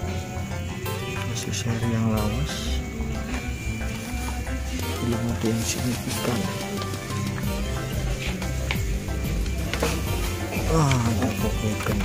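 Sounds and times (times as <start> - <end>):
music with held notes and bass: 0.0 - 12.0.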